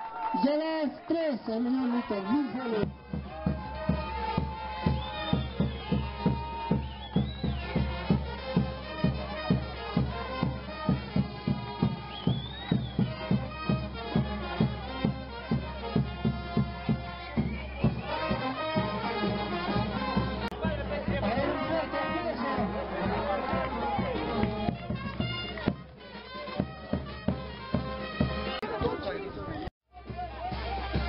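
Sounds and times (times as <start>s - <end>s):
brass band playing: 1.7s - 28.9s, 30.0s - 31.0s
bass drum beat: 2.7s - 29.1s, 29.9s - 31.0s.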